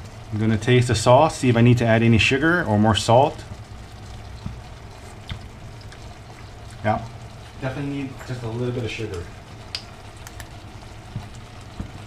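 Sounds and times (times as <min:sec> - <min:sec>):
gravy bubbling in a frying pan: 0:00.0 - 0:12.0.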